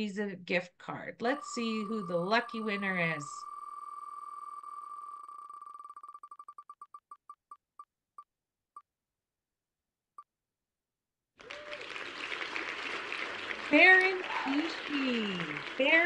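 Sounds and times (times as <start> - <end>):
applause sound effect: 11.4 - 16.0.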